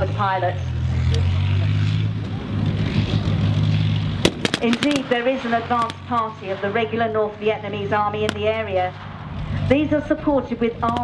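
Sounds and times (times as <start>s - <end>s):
heavy vehicle engine running: 0.0s - 11.0s.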